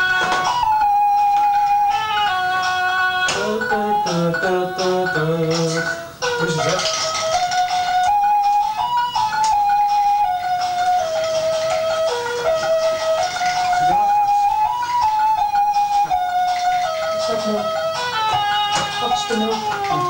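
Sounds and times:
electronic toy keyboard tune: 0:00.0 - 0:20.0.

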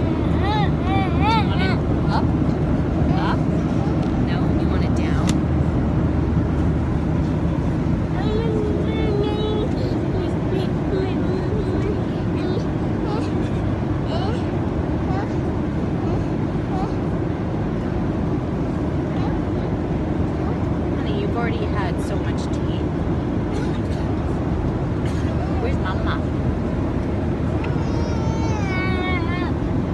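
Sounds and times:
airliner cabin roar: 0:00.0 - 0:29.9
small child vocalising: 0:00.2 - 0:02.3, 0:27.6 - 0:29.6.

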